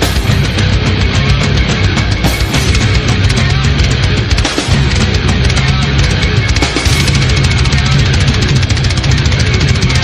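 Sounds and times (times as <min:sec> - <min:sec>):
distorted electric guitars: 0:00.0 - 0:10.0
rapid driving drumming: 0:00.0 - 0:10.0.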